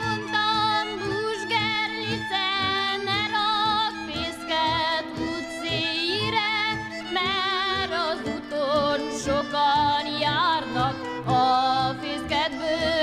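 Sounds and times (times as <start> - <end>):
woman singing folk song: 0.0 - 13.0.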